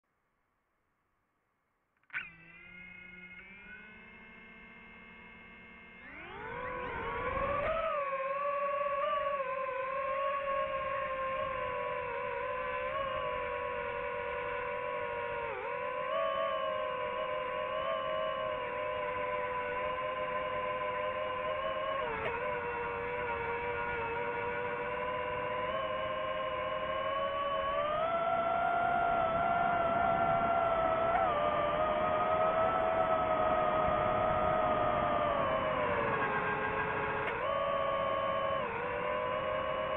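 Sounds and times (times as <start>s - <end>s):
drone propellers whining: 2.0s - 39.9s.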